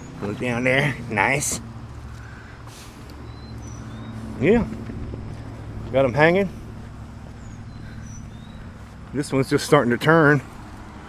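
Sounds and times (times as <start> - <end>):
faint bird chirps: 3.2 - 4.3, 7.2 - 9.0.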